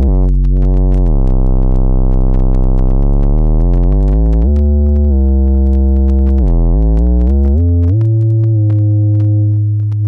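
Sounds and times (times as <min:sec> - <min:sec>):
crackling static clicks: 0:00.0 - 0:10.0
low synthesizer note: 0:00.0 - 0:10.0.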